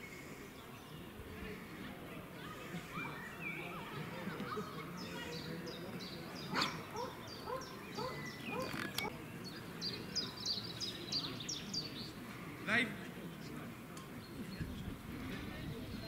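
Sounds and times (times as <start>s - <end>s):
faint murmur of voices: 0.0s - 16.0s
songbird chirping: 3.3s - 12.3s.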